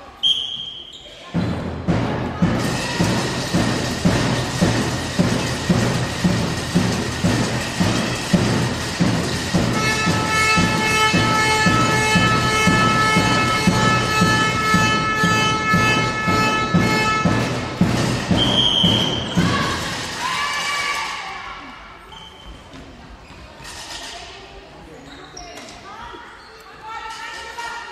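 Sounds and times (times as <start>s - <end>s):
music with a steady beat: 1.4s - 19.8s
long held horn-like tone: 9.8s - 17.5s.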